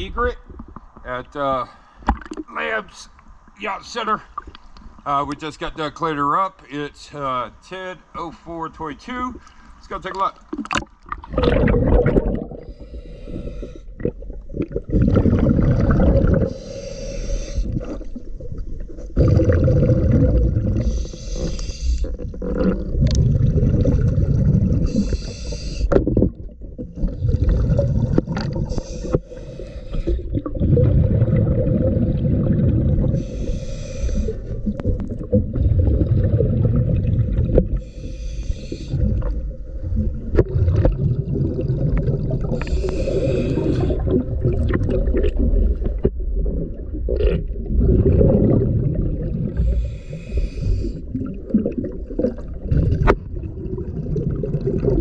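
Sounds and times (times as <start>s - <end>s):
exhaust bubbles rumbling: 10.6s - 16.8s, 17.6s - 33.6s, 34.2s - 37.9s, 38.9s - 55.0s
regulator hiss: 16.5s - 17.7s, 20.9s - 22.1s, 24.9s - 25.9s, 28.7s - 30.2s, 33.2s - 34.5s, 37.8s - 39.0s, 42.6s - 44.0s, 49.6s - 51.0s.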